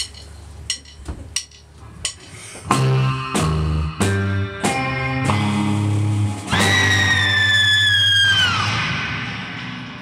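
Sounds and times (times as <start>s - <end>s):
surf rock band playing: 2.6s - 10.0s
high held wailing tone: 6.5s - 8.8s.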